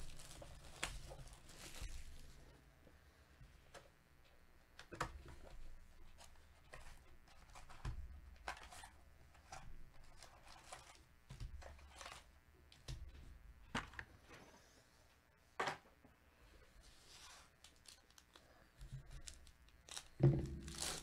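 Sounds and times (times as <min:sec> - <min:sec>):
foil packs rustling: 0:00.0 - 0:02.5, 0:17.4 - 0:21.0.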